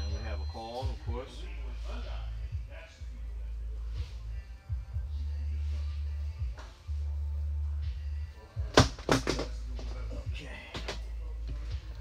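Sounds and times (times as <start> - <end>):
steady low hum: 0.0 - 8.8.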